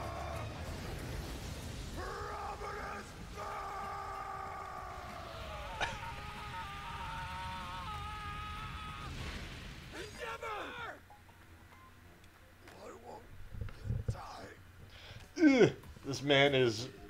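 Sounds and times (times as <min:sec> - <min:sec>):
strained cry: 0:02.0 - 0:11.0.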